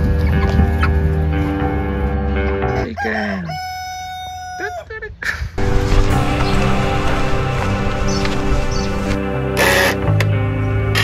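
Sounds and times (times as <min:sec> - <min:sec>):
background music: 0:00.0 - 0:03.9, 0:05.6 - 0:11.0
rooster crowing: 0:02.7 - 0:04.9.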